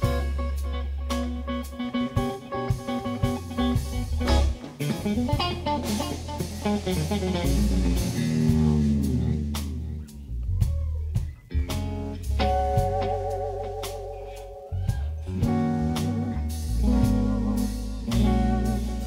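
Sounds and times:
electric guitar solo: 0:00.0 - 0:10.2, 0:10.9 - 0:19.0
bass guitar: 0:00.0 - 0:19.0
drum kit: 0:00.0 - 0:19.0.

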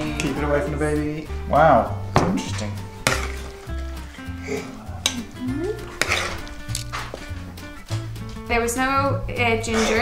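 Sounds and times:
soft background music: 0:00.0 - 0:10.0
metal ladle scraping metal tray: 0:05.8 - 0:07.1.

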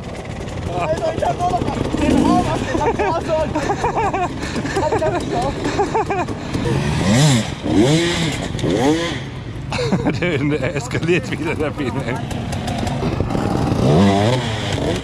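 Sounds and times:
motorcycle engines revving: 0:00.0 - 0:15.0.

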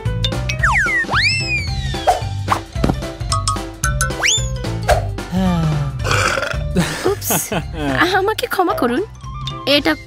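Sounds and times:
background music: 0:00.0 - 0:10.0
person burping: 0:05.9 - 0:06.9.

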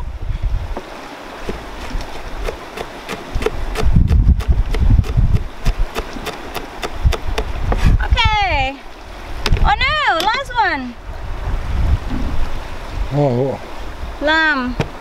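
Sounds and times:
wind rumble on microphone: 0:00.0 - 0:02.6, 0:03.2 - 0:15.0
knife chopping on plastic board: 0:02.4 - 0:07.5.

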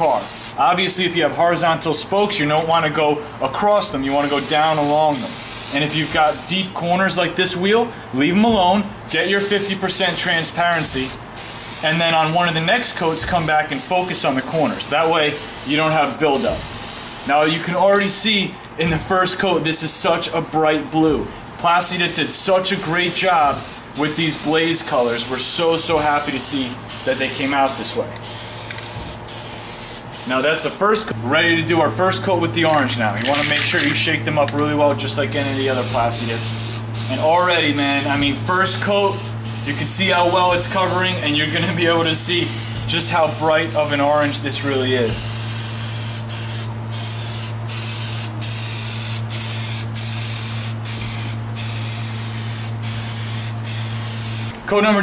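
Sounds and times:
steady low hum: 0:00.0 - 0:54.7
aerosol can spraying hiss: 0:00.1 - 0:00.6, 0:04.2 - 0:06.6, 0:11.4 - 0:12.4, 0:14.7 - 0:17.3, 0:23.5 - 0:25.2, 0:26.3 - 0:30.4, 0:39.1 - 0:44.1, 0:45.1 - 0:54.5.

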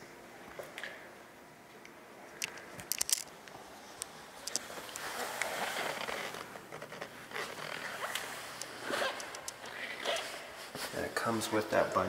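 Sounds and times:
rustling and scraping handling noise: 0:02.6 - 0:11.4.

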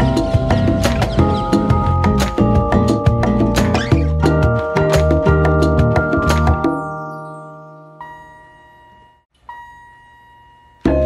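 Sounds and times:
held keyboard notes: 0:00.0 - 0:09.3, 0:10.7 - 0:11.0.

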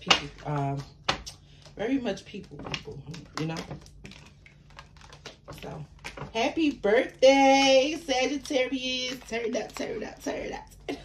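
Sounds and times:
woman speaking: 0:00.0 - 0:04.2, 0:05.5 - 0:11.0.

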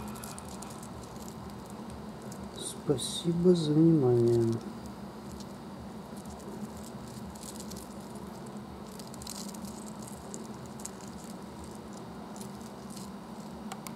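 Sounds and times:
steady low hum: 0:00.0 - 0:13.9.

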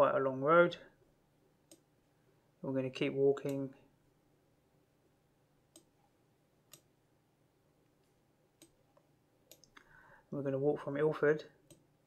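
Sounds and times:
faint computer mouse clicks: 0:05.7 - 0:05.9, 0:06.7 - 0:06.9, 0:08.6 - 0:09.9.

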